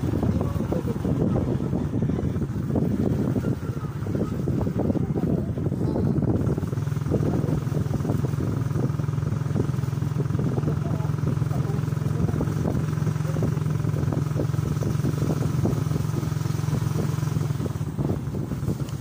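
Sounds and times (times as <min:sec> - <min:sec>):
small motorcycle engine running: 0:00.0 - 0:19.0.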